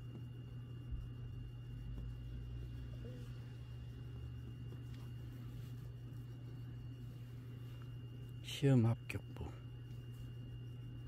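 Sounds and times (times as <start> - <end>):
faint high-pitched whine: 0.0 - 11.0
steady low hum: 0.0 - 11.0.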